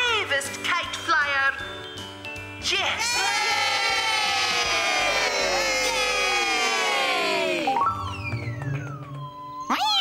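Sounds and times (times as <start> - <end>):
group cheering: 3.0 - 7.8.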